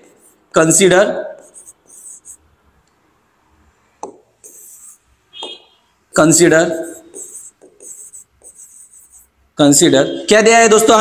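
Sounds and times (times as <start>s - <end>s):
chalk scratching on blackboard: 0.0s - 0.5s, 1.4s - 2.5s, 4.4s - 5.1s, 6.6s - 9.4s
person speaking: 0.0s - 2.4s, 4.4s - 5.0s, 6.1s - 10.0s.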